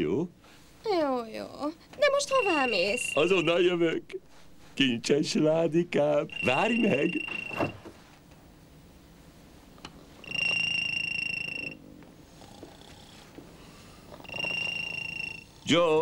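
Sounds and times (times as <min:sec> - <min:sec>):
telephone ringing: 0:02.0 - 0:03.7, 0:06.3 - 0:07.9, 0:10.2 - 0:11.8, 0:14.2 - 0:15.5.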